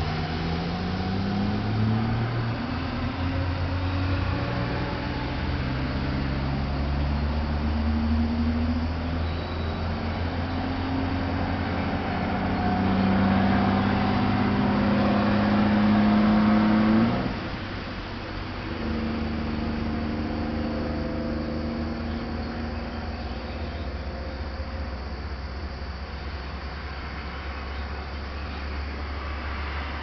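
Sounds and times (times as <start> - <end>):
engine running with rising pitch: 0.0 - 30.0
low steady hum: 0.0 - 30.0.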